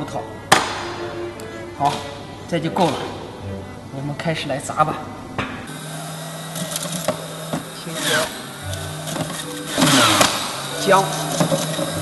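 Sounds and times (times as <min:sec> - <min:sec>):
electric juicer motor hum: 0:05.7 - 0:12.0.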